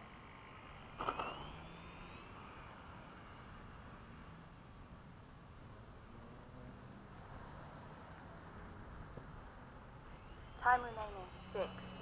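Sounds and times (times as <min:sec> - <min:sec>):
model plane motor whine: 0:00.0 - 0:04.2, 0:09.7 - 0:12.0.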